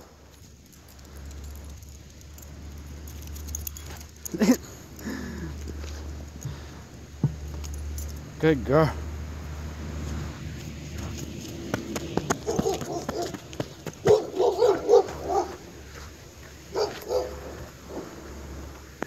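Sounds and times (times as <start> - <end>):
dog barking: 12.4 - 13.4, 14.0 - 15.6, 16.7 - 18.2.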